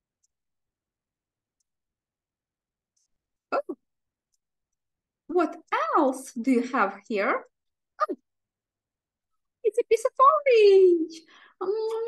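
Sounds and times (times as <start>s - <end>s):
woman short vocal sounds: 3.5s - 3.8s.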